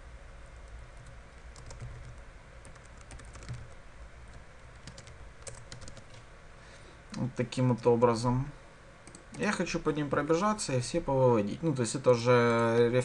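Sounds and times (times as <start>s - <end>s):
computer keyboard typing: 1.0s - 3.8s, 4.7s - 6.2s, 9.0s - 9.4s, 12.4s - 13.0s.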